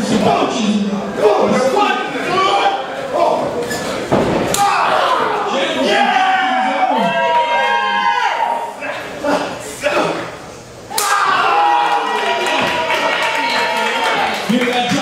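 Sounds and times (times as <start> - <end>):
people shouting and yelling: 4.4 - 10.2, 10.8 - 15.0.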